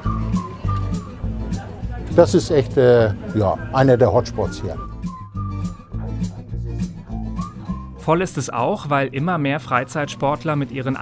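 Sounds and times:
music with bass and beat: 4.8 - 8.1.

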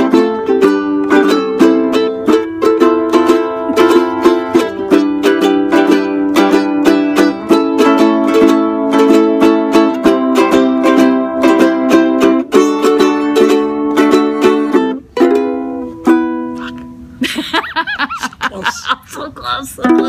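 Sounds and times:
ukuleles strumming: 0.0 - 20.0.

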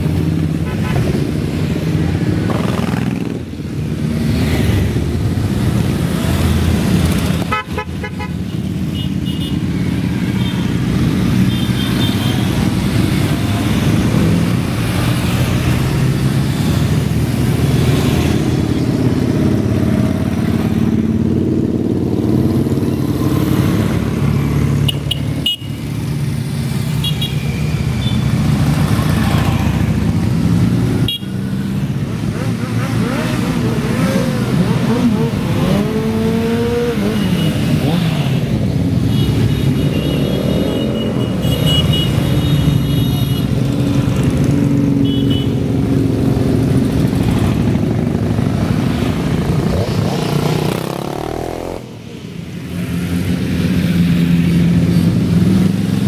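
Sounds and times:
motorcycles riding past revving: 0.0 - 7.5, 9.7 - 56.0.

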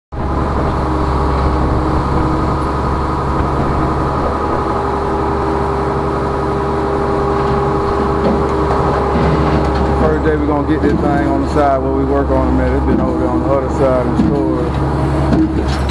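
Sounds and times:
steady whine: 0.1 - 15.9
tow truck engine hum: 0.1 - 15.9.

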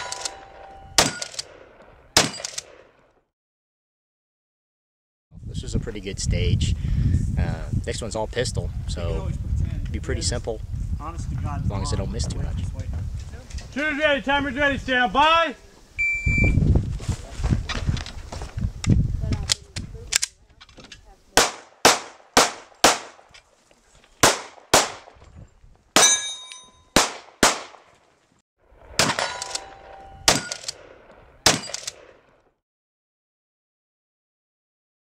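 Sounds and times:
pistol shots: 0.0 - 3.0, 21.4 - 23.3, 24.2 - 25.1, 27.0 - 27.9, 28.9 - 32.2.

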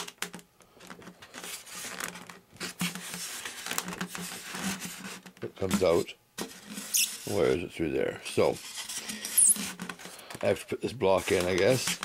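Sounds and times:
hands rubbing styrofoam: 1.4 - 6.0, 6.6 - 7.6, 11.0 - 12.0.

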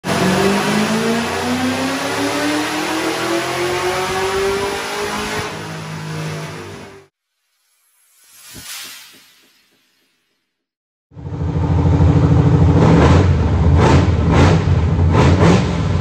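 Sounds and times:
engine revving on a dyno: 0.0 - 7.2, 11.2 - 16.0.

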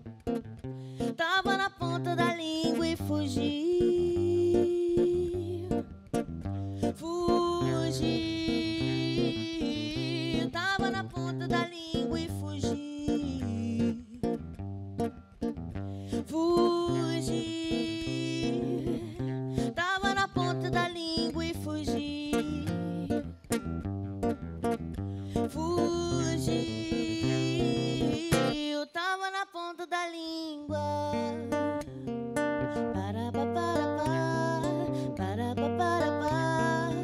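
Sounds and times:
classical guitar playing: 0.0 - 28.6, 30.7 - 37.0
person singing: 1.0 - 5.9, 6.8 - 14.5, 16.0 - 23.4, 25.2 - 37.0.

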